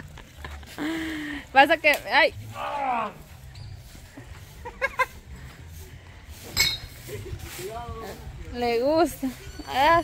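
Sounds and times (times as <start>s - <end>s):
people calling and laughing: 0.0s - 10.0s.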